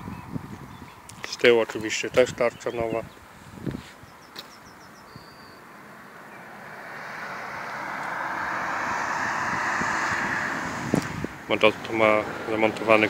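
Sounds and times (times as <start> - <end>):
vehicle passing by: 5.6 - 13.0.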